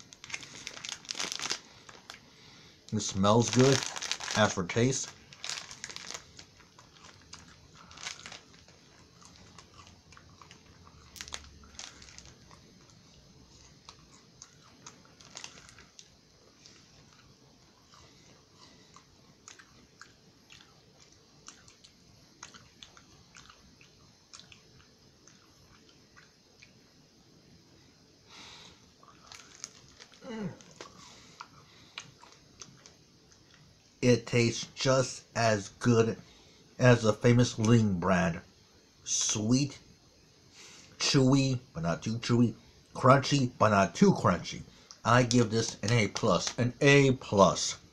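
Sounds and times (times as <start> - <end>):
person chewing crispy bar: 0.0 - 2.3, 3.3 - 26.8, 29.0 - 33.7
small crunches: 0.0 - 2.3, 2.9 - 26.7, 29.0 - 33.7.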